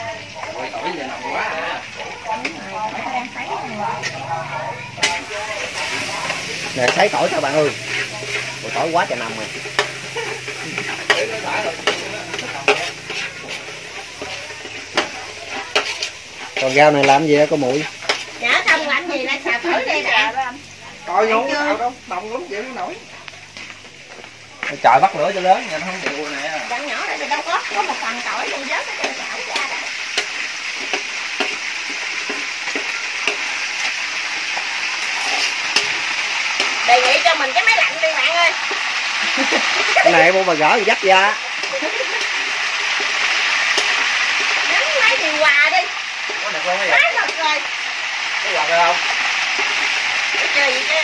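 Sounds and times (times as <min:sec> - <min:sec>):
people talking: 0:00.0 - 0:23.8, 0:36.8 - 0:38.6, 0:44.6 - 0:47.7, 0:50.4 - 0:51.0
faint frying sizzle: 0:00.0 - 0:51.0.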